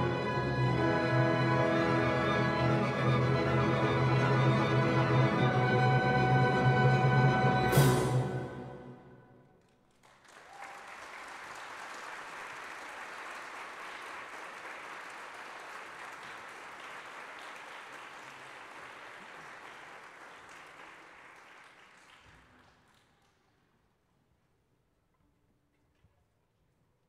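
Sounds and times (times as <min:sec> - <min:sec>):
orchestra final chord: 0:05.7 - 0:09.2
audience applause: 0:09.8 - 0:23.1.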